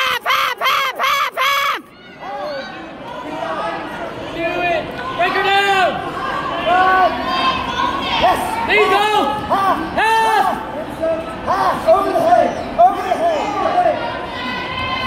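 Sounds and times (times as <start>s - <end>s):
crowd calling out and chattering: 0.0s - 15.0s
spectators yelling: 0.0s - 15.0s.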